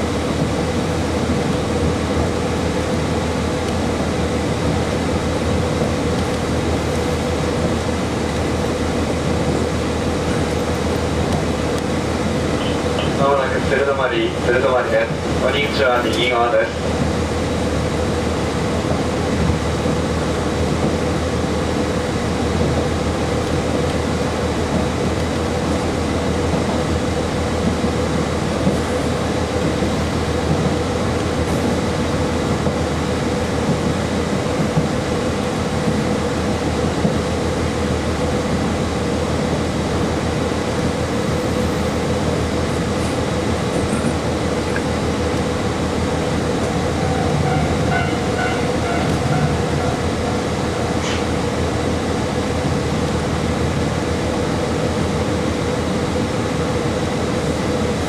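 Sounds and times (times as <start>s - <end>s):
train wheels on rails: 0.0s - 58.0s.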